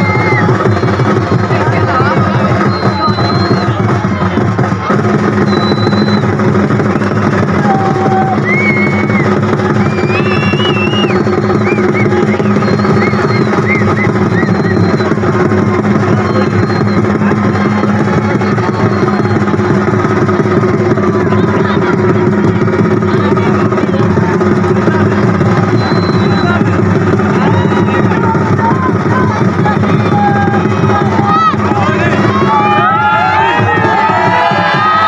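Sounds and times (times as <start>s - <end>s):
crowd voices: 0.0s - 35.0s
fast drumming: 0.0s - 35.0s.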